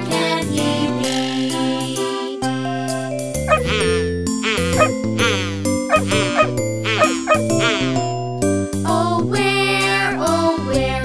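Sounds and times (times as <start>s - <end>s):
children's song instrumental: 0.0s - 11.0s
cartoon puppy barking: 3.5s - 8.0s.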